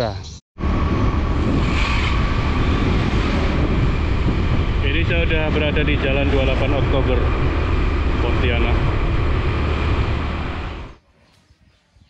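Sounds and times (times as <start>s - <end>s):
vehicle road noise: 0.6s - 11.0s
wind on microphone: 0.6s - 12.0s.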